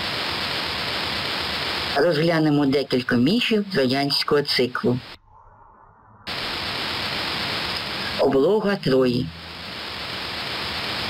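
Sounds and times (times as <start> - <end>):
steady static hiss: 0.0 - 5.2, 6.3 - 11.0.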